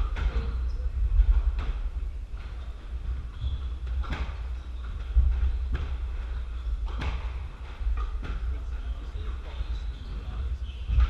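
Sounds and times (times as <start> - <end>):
squash ball hits: 0.0 - 9.2
shoes squeaking on wooden floor: 2.4 - 11.0.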